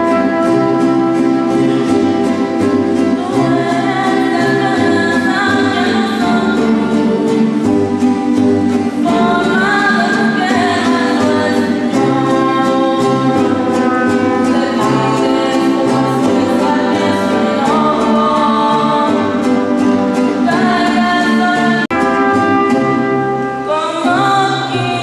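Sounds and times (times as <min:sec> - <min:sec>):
strummed guitars: 0:00.0 - 0:25.0
women singing together: 0:03.2 - 0:07.6, 0:09.0 - 0:19.6, 0:20.4 - 0:21.9.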